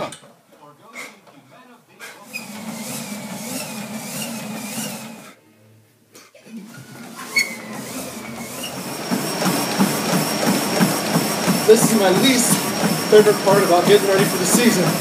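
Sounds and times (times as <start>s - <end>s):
treadmill motor whining: 2.2s - 5.4s, 6.7s - 15.0s
footfalls on treadmill belt: 7.4s - 15.0s.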